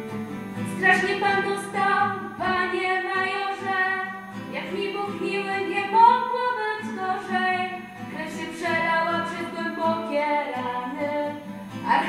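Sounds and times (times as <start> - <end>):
strummed acoustic guitar: 0.0 - 12.0
woman singing: 0.7 - 12.0.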